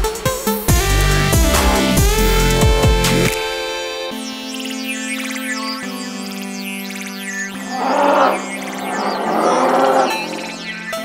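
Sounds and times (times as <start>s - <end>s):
synthesizer background music: 0.0s - 11.0s
dinosaur roar: 1.3s - 2.5s, 7.6s - 10.7s.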